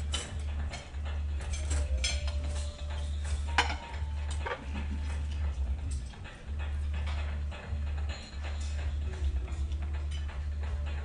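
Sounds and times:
heavy low bass: 0:00.0 - 0:11.0.

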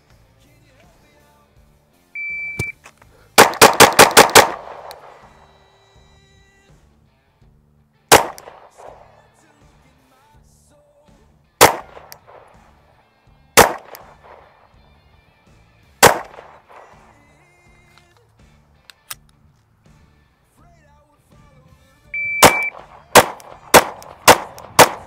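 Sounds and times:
background music: 0:00.0 - 0:25.0
pistol shots with ringing echo: 0:03.4 - 0:05.6, 0:08.1 - 0:09.3, 0:11.6 - 0:12.7, 0:13.6 - 0:14.7, 0:16.0 - 0:17.2, 0:22.2 - 0:25.0.

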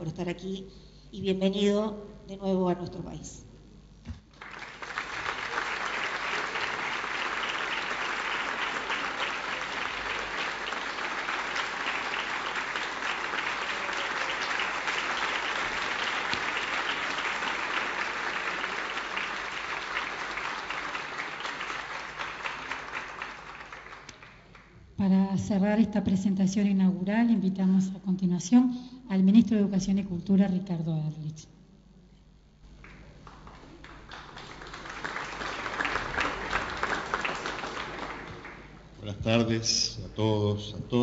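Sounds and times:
audience applauding: 0:04.3 - 0:24.8, 0:32.8 - 0:38.9.

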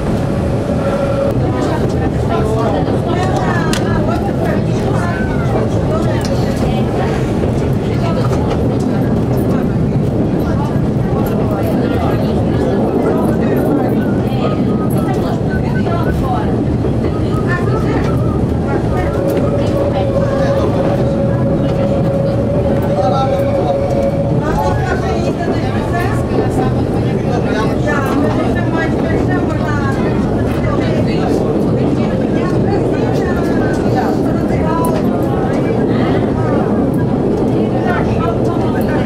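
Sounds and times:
diesel engine drone: 0:00.0 - 0:03.0
wheels rumbling on rails: 0:00.0 - 0:39.0.

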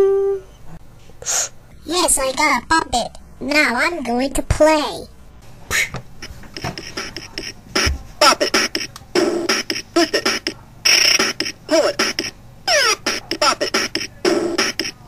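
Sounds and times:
electronic toy game sounds: 0:06.6 - 0:15.0.

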